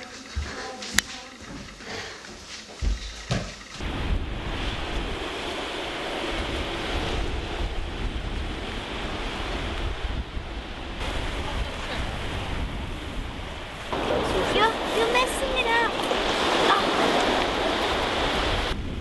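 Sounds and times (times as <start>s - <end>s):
wind buffeting microphone: 3.6s - 19.0s
small surf washing onto beach: 11.0s - 18.8s.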